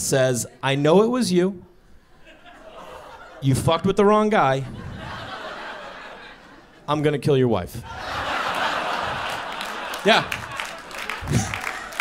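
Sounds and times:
large audience laughing: 0:02.0 - 0:06.9, 0:07.8 - 0:12.0.

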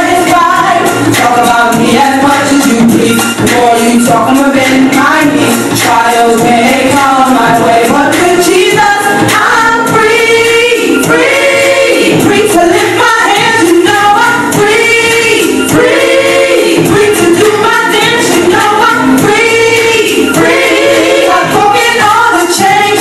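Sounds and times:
hip-hop song with sung vocals: 0:00.0 - 0:23.0.

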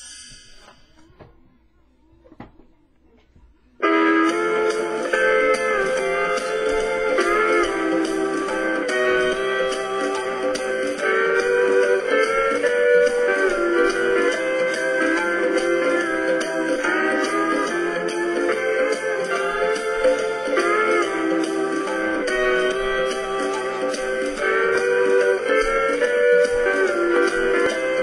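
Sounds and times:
hula steel guitar music: 0:03.8 - 0:28.0.

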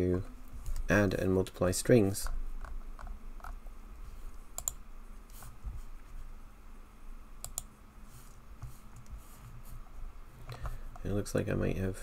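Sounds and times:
computer keyboard key clicks: 0:04.6 - 0:04.8.

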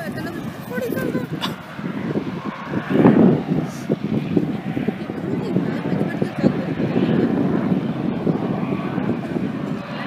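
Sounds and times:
distant helicopter in flight: 0:00.0 - 0:10.0
wind rumbling on microphone: 0:00.0 - 0:10.0.

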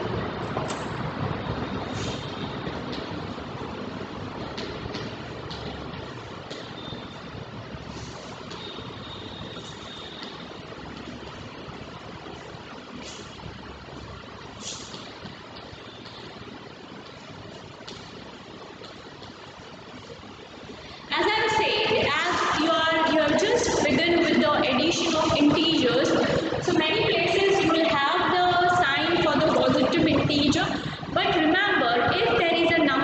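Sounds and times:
steady hiss: 0:00.0 - 0:28.8.

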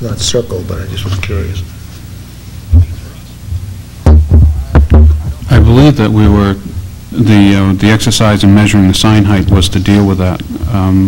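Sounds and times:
mains hum and hiss: 0:00.0 - 0:11.0.

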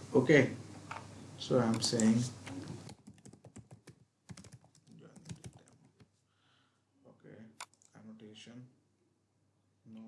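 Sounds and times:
computer keyboard typing: 0:01.7 - 0:06.1, 0:07.6 - 0:07.9.

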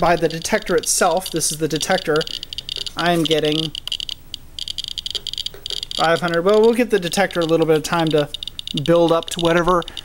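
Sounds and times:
geiger counter chirping: 0:00.0 - 0:10.0.

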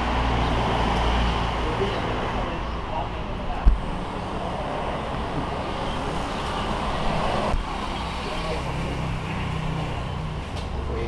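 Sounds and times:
traffic rushing by: 0:00.0 - 0:11.0.

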